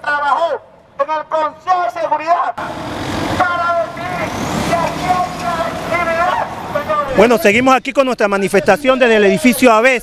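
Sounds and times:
vehicle driving past: 0:02.6 - 0:07.1.

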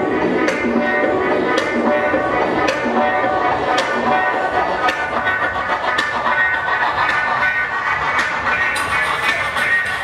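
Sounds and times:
loud dance music: 0:07.7 - 0:10.0.

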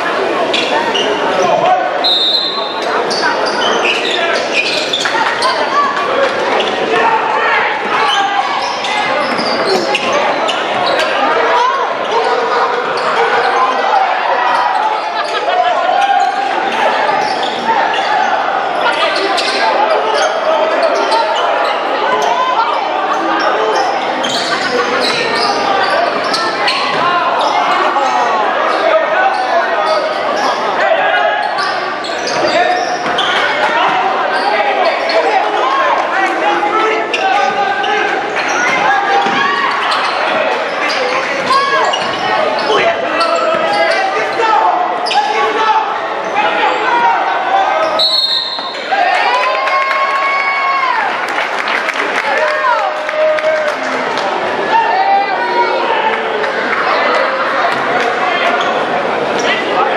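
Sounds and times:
crowd talking and calling out: 0:00.0 - 0:59.9.

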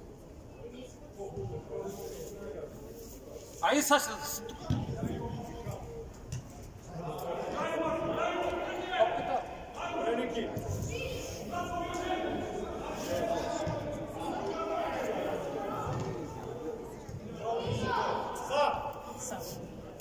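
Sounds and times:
players shouting in hall: 0:17.4 - 0:18.9.

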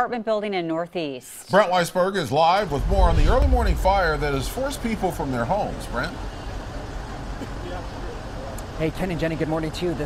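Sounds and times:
fire engines running: 0:02.6 - 0:10.0.

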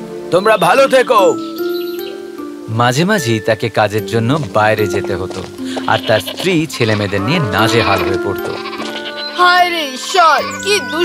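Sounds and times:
background music with held notes: 0:00.0 - 0:11.0
animal bleating: 0:05.6 - 0:11.0.

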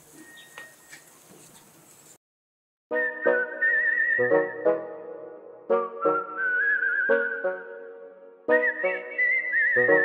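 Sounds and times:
whistled tune: 0:02.9 - 0:04.9, 0:05.7 - 0:07.9, 0:08.5 - 0:10.0.

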